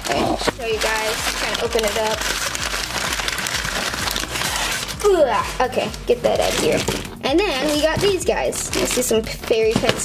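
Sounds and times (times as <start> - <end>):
packing paper crinkling: 0.0 - 10.0.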